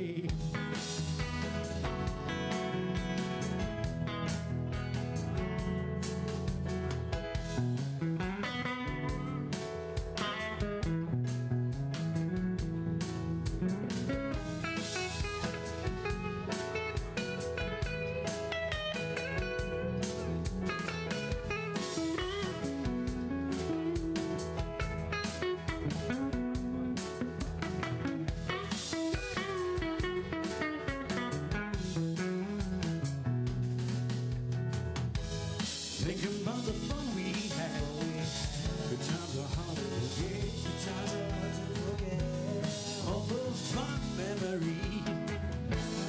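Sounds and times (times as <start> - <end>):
bass guitar: 0.0 - 46.0
electric guitar: 0.0 - 46.0
steady drum beat: 0.0 - 46.0.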